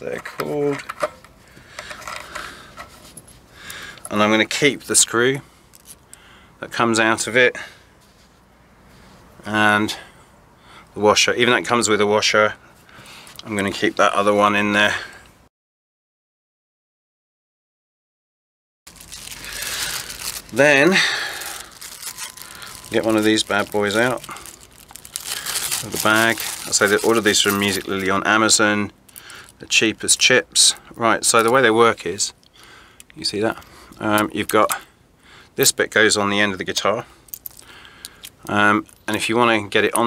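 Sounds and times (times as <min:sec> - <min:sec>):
plastic bag crinkling: 0:18.9 - 0:28.2.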